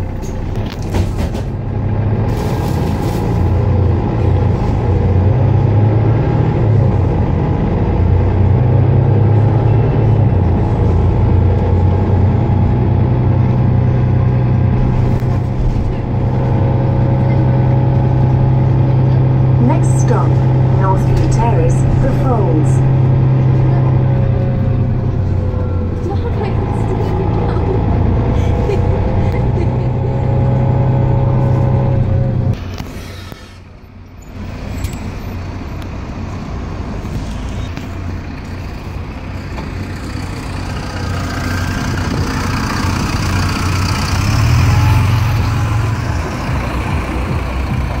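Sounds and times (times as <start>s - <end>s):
bus engine drone: 0.0s - 48.0s
bus pulling away: 0.0s - 48.0s
engine whine: 0.0s - 48.0s.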